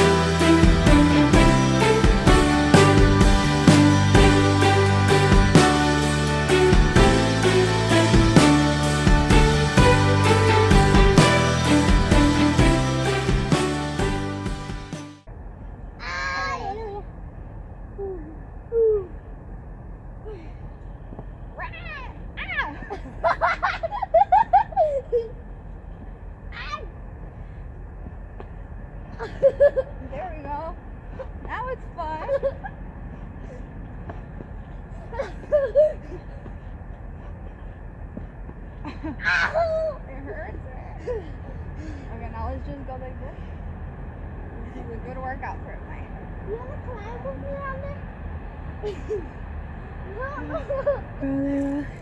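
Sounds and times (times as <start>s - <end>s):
outdoor background noise: 0.0s - 52.0s
child calling and laughing: 16.0s - 17.2s, 17.9s - 19.3s, 21.6s - 25.5s, 26.5s - 27.0s, 35.0s - 36.3s, 38.9s - 40.1s, 50.0s - 51.2s
woman calling and laughing: 21.8s - 25.5s, 29.2s - 33.0s, 35.0s - 36.5s, 38.8s - 42.2s, 48.8s - 52.0s.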